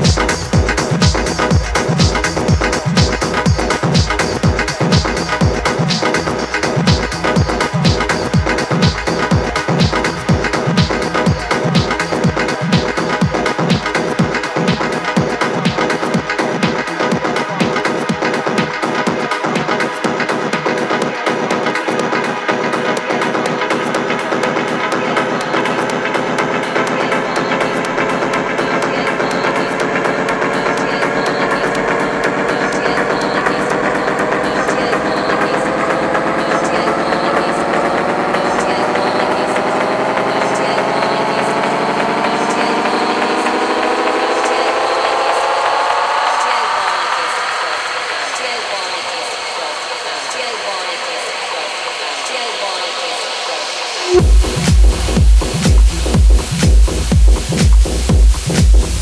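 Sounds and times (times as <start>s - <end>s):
fast ticking hi-hats: 0.0s - 49.0s, 53.9s - 59.0s
techno bass: 0.0s - 59.0s
synth riser: 23.7s - 48.7s, 53.6s - 59.0s.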